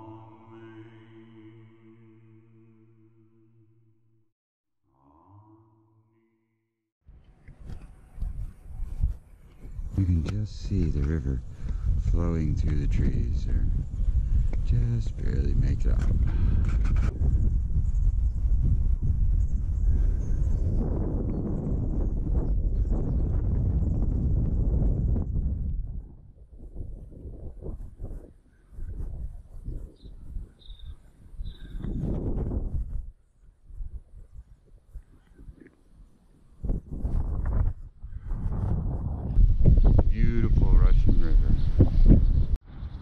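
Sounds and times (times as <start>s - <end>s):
wind buffeting microphone: 7.6s - 43.0s.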